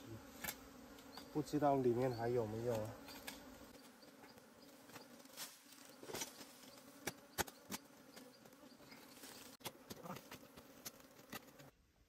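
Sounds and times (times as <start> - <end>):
honeybees buzzing: 0.0 - 11.7.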